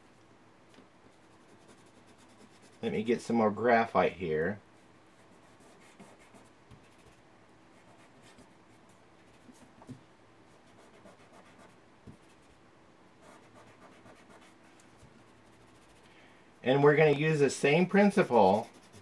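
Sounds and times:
fingertip rubbing paper: 0:13.3 - 0:16.1, 0:17.8 - 0:19.0.

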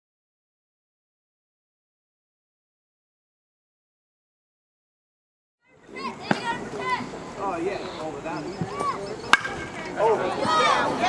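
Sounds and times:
spectators shouting and cheering: 0:05.7 - 0:11.0
bat hitting ball: 0:06.3 - 0:06.6, 0:09.3 - 0:09.9.

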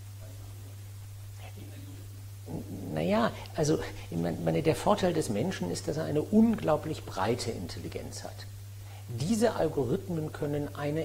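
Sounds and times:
low electrical hum: 0:00.0 - 0:11.0
man talking close to microphone: 0:01.4 - 0:08.5, 0:09.1 - 0:11.0.

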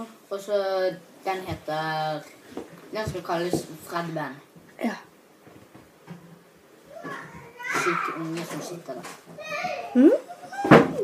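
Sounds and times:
boy speaking: 0:06.9 - 0:10.5.

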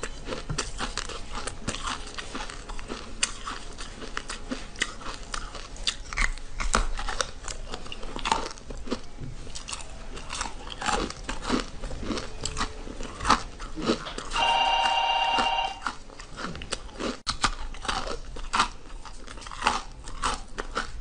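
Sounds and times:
steady pitched ringing tone: 0:14.4 - 0:15.8.

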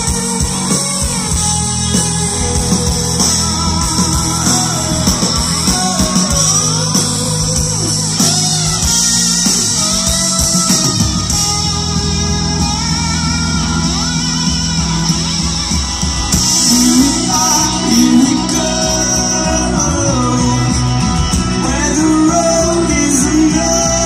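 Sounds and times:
electric guitar lead bending notes: 0:00.0 - 0:24.0
rock band playing live: 0:00.0 - 0:24.0.

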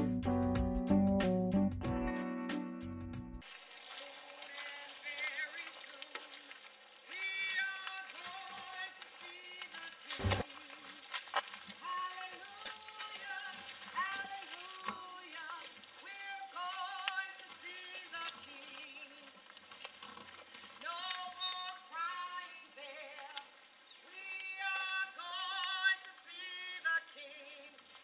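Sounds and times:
keyboard music: 0:00.0 - 0:03.4
steady hiss: 0:03.4 - 0:28.0.

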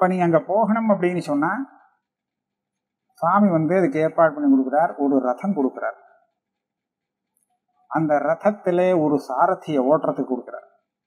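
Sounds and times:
man speaking: 0:00.0 - 0:01.8, 0:03.2 - 0:06.1, 0:07.9 - 0:10.7.

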